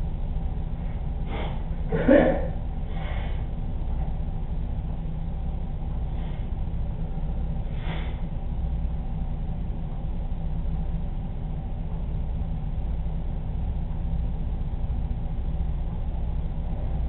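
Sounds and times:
faint hum: 0.0s - 17.0s
steady low rumble: 0.0s - 17.0s.

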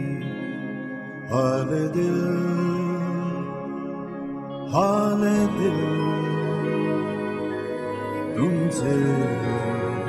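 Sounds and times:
person singing: 0.0s - 10.0s
soft instrumental chords: 0.0s - 10.0s.

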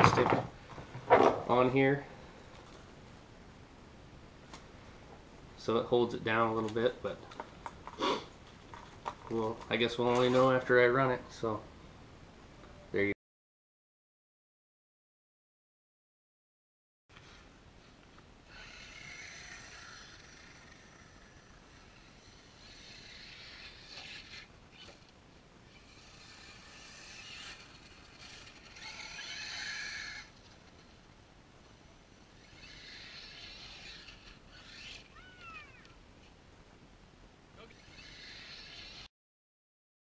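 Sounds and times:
rc truck motor and tyres: 17.1s - 36.4s, 37.6s - 39.1s.

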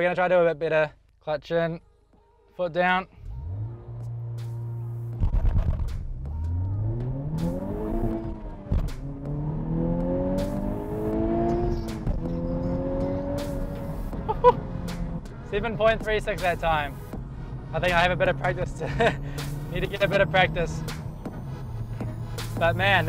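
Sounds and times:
car engine revving and accelerating: 3.2s - 23.0s.

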